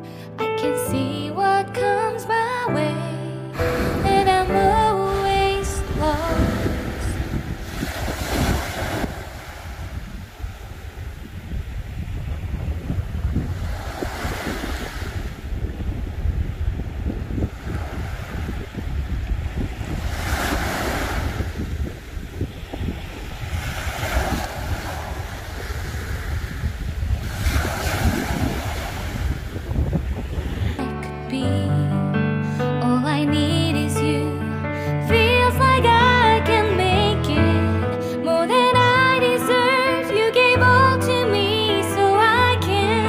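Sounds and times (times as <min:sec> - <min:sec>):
waves breaking on sandy beach: 0:03.6 - 0:04.2, 0:05.6 - 0:30.8
wind rumble on microphone: 0:03.6 - 0:30.9.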